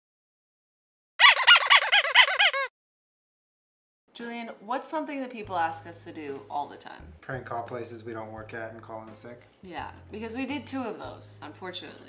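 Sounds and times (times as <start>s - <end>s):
rapid high squeaky chirps: 1.2s - 2.7s.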